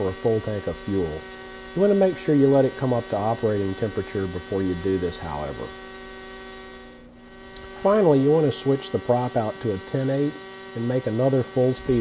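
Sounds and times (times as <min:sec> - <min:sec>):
model helicopter engine buzzing: 0:00.0 - 0:12.0.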